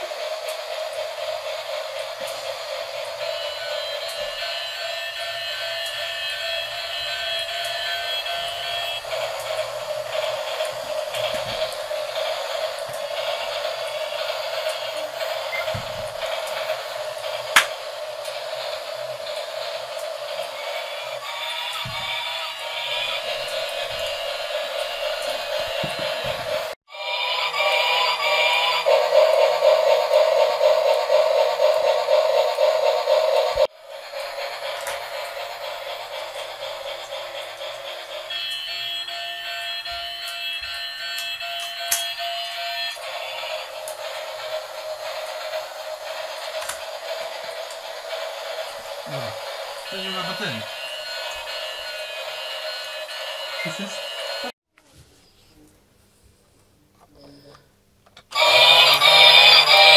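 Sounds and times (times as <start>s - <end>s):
toy motors whirring: 0.0s - 54.5s, 58.3s - 59.9s
toy train sound effects: 0.0s - 54.5s, 58.3s - 59.9s.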